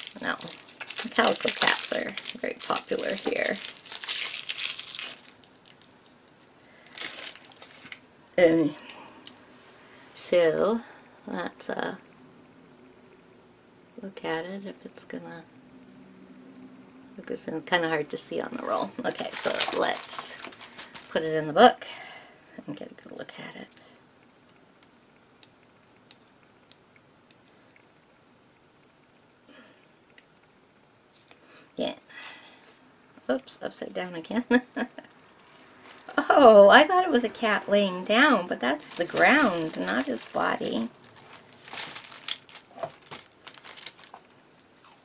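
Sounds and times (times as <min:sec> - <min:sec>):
packaging crinkling: 0:00.0 - 0:08.1, 0:19.0 - 0:21.3, 0:35.0 - 0:36.2, 0:38.1 - 0:45.0.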